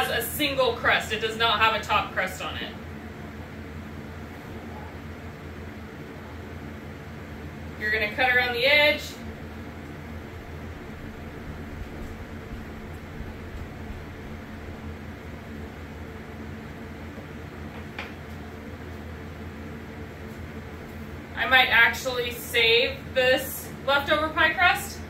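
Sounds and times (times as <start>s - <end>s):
kitchen background hum: 0.0s - 25.0s.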